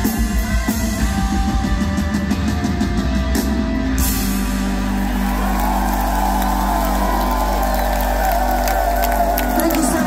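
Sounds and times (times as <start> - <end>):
electric guitars and bass chord ringing: 0.0 - 10.0
audience cheering and whooping: 4.6 - 10.0.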